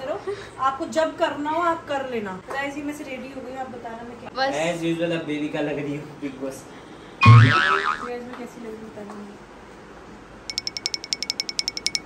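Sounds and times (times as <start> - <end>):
cartoon deep thud: 7.2 - 8.1
cartoon spring boing: 7.2 - 8.1.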